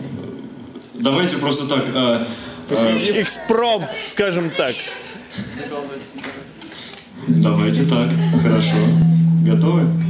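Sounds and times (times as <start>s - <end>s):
person talking on mic: 7.3s - 10.0s.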